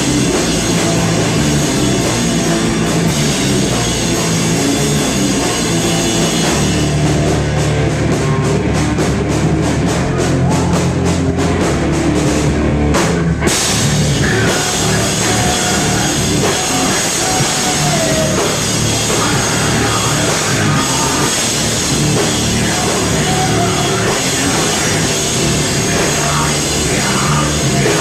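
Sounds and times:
heavy rock band playing: 0.0s - 28.0s
person singing: 13.8s - 28.0s.

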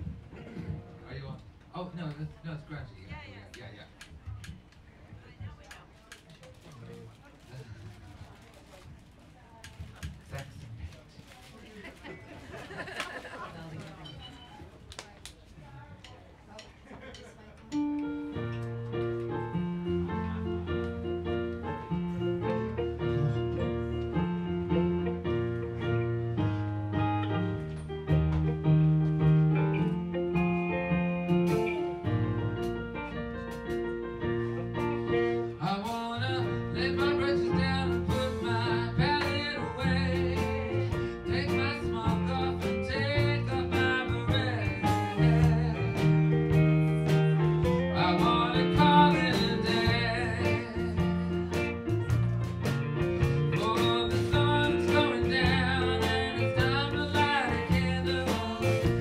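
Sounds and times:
faint voices: 2.3s - 18.4s
live instrumental accompaniment: 17.6s - 59.0s
piano chords over bass line: 17.8s - 59.0s
man singing into a microphone: 35.1s - 46.5s, 47.1s - 51.5s, 53.5s - 59.0s.

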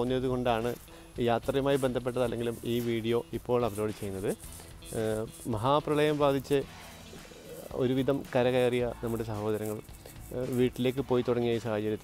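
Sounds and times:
man speaking: 0.0s - 6.7s, 7.5s - 12.0s.

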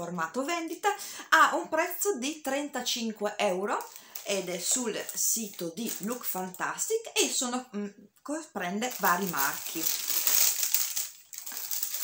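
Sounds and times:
tissue paper crinkling: 3.8s - 6.6s, 8.8s - 12.0s.

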